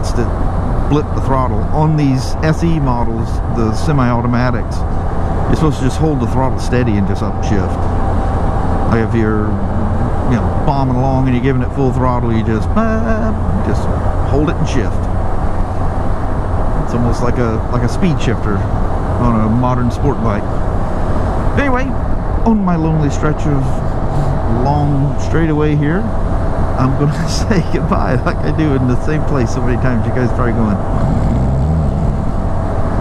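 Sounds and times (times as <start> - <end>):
vehicle engine drone: 0.0 - 33.0.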